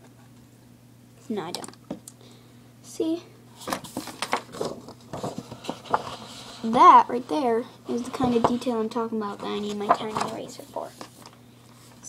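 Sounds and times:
paper scraping and tapping on table: 0:03.6 - 0:06.8, 0:08.0 - 0:08.8.

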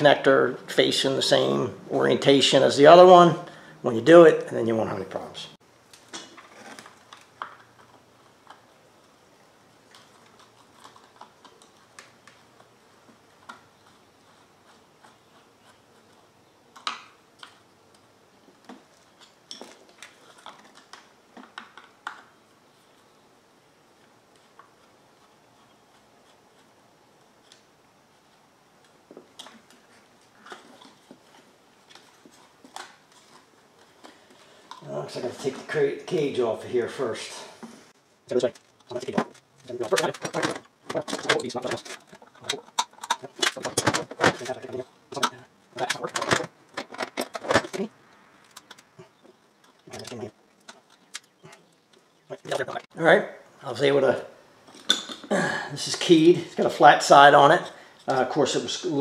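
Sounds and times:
plastic parts clicking and knocking: 0:38.5 - 0:52.6.

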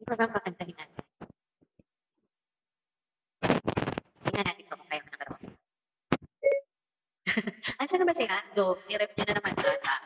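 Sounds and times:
electronic beep: 0:06.4 - 0:06.6.

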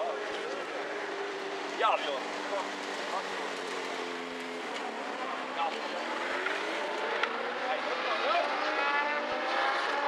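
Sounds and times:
engine droning: 0:00.0 - 0:10.0.

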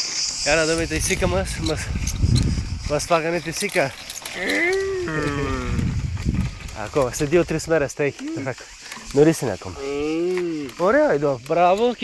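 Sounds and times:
person speaking: 0:03.0 - 0:05.8
person holding long vowel: 0:04.4 - 0:05.8.

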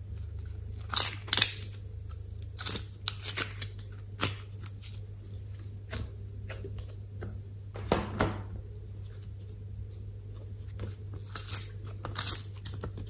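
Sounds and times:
steady low hum: 0:00.0 - 0:13.0
sticky slime crackles and pops: 0:00.8 - 0:01.8.

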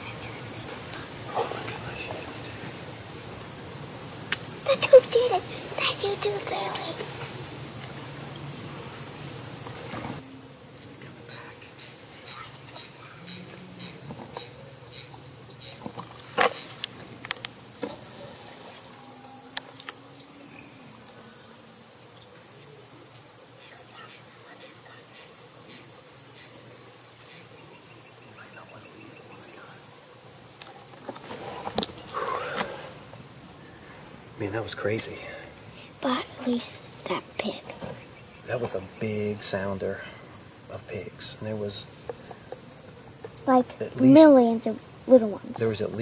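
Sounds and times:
high-pitched insect chorus: 0:00.0 - 0:46.0.

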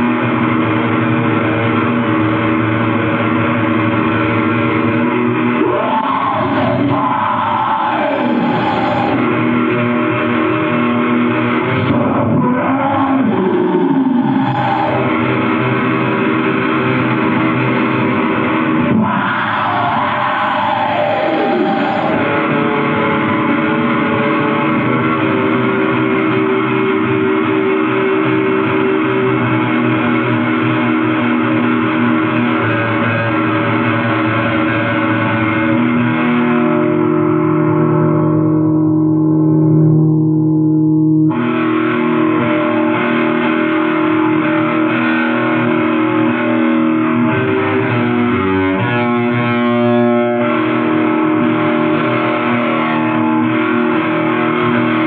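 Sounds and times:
black metal with distorted guitar: 0:00.0 - 0:55.0
held low note: 0:37.2 - 0:41.5.

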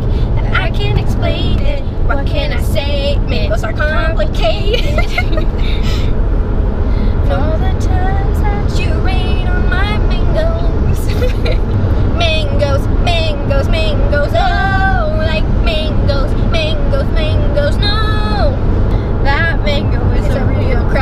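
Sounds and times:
car cabin road rumble: 0:00.0 - 0:21.0
women talking: 0:19.8 - 0:21.0.

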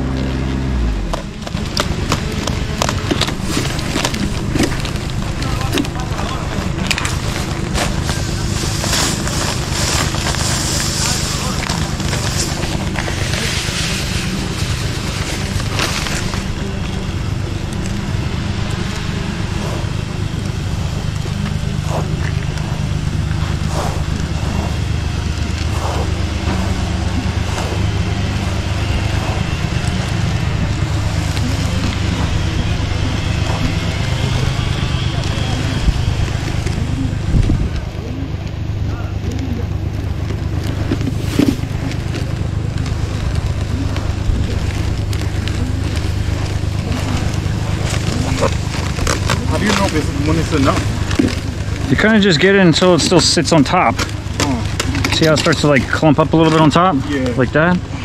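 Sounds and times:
low engine drone: 0:00.0 - 0:58.0
spreader scattering granules: 0:01.2 - 0:36.6, 0:39.9 - 0:57.7.

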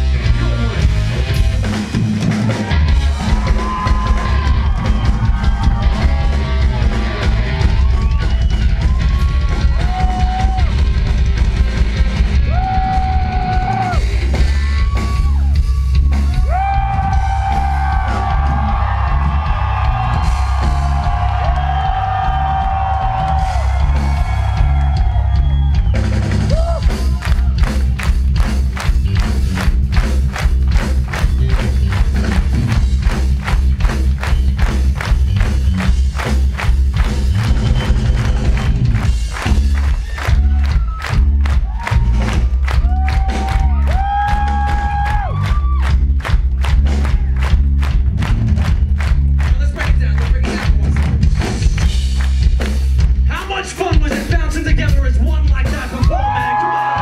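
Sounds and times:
fast driving drum beat: 0:00.0 - 0:57.0
live rock band playing: 0:00.0 - 0:57.0.

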